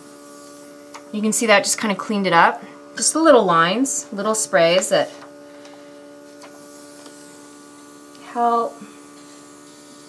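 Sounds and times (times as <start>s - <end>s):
airbrush compressor humming: 0.0s - 10.0s.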